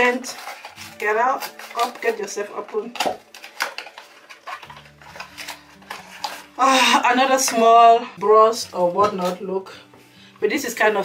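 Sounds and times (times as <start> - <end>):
cardboard packaging handled: 0.0 - 7.6.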